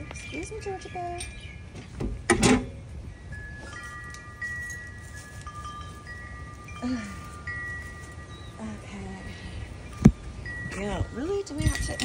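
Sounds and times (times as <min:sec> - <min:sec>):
wind chimes ringing: 0:00.0 - 0:01.8, 0:02.7 - 0:12.0.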